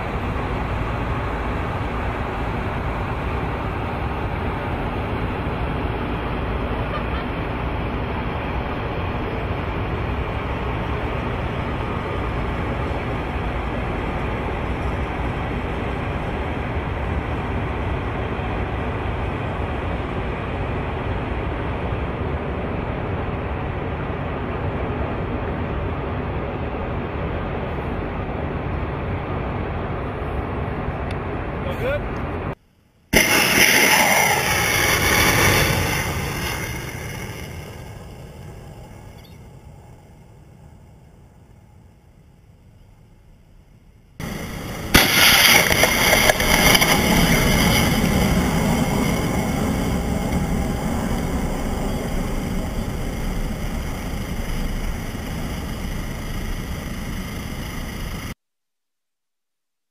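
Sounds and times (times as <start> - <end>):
vehicle noise: 0.0 - 58.4
rocket motor roar: 33.1 - 40.5, 44.2 - 58.4.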